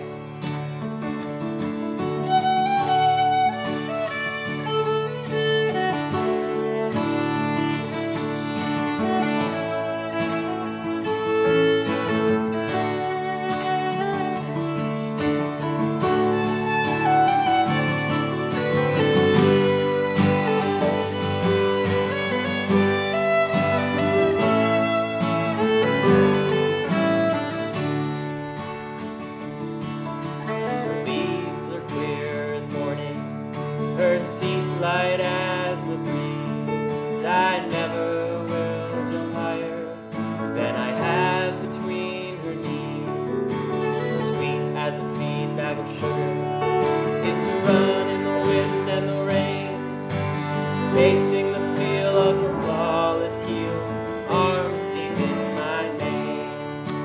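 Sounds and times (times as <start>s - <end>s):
acoustic guitar: 0.0s - 57.0s
grand piano: 0.0s - 57.0s
violin: 0.0s - 57.0s.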